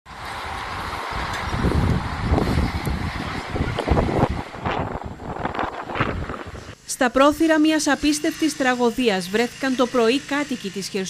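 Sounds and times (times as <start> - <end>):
gusty wind buffeting microphone: 0.1 - 8.1.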